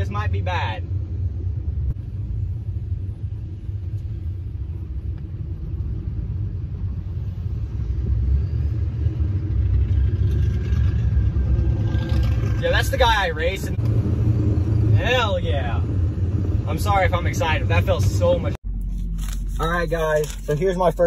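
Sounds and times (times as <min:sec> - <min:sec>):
diesel pickup engine rumble: 0:00.0 - 0:21.0.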